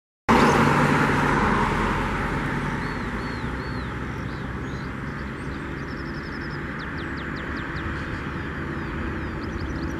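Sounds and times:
vehicle passing close by: 0:00.3 - 0:09.9.

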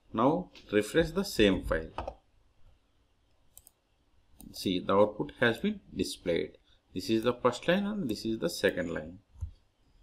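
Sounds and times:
faint computer clicks: 0:03.5 - 0:03.8.

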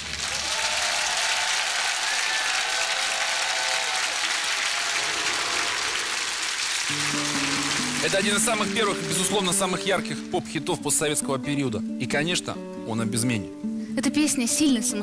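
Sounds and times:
audience applauding: 0:00.0 - 0:10.4
music: 0:06.8 - 0:15.0.

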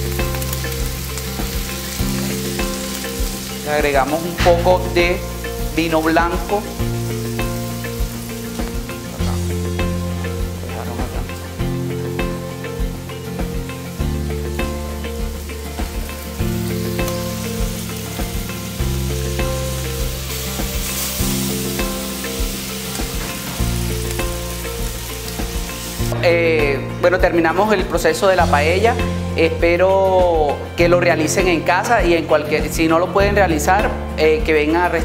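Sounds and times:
food sizzling in a pan: 0:00.0 - 0:26.2
background music with low chords: 0:00.0 - 0:35.0.

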